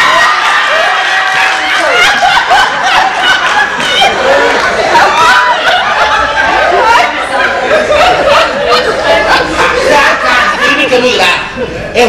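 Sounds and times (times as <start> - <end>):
audience laughing: 1.4 - 11.9.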